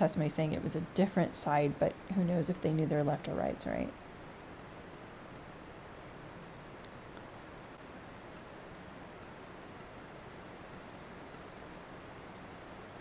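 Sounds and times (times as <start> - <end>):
microphone room noise hiss: 0.0 - 13.0.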